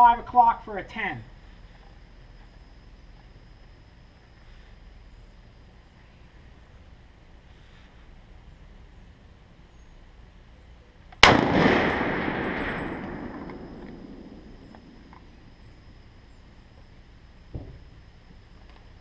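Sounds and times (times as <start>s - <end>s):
rifle shot with echo: 11.2s - 15.6s
faint short thump: 17.5s - 17.8s.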